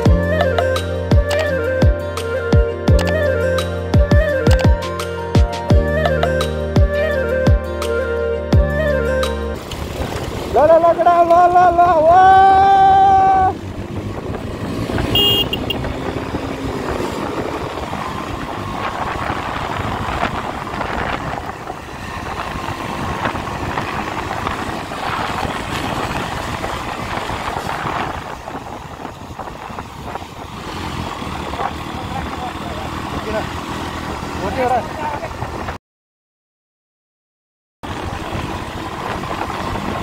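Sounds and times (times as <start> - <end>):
motorcycle engines running: 9.6 - 35.8, 37.8 - 40.0
wind rushing over microphone: 9.6 - 35.8, 37.8 - 40.0.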